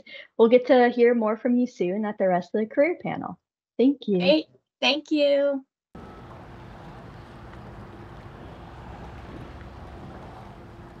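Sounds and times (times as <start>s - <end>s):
faint steady hum: 6.0s - 11.0s
steady rushing noise: 6.0s - 11.0s.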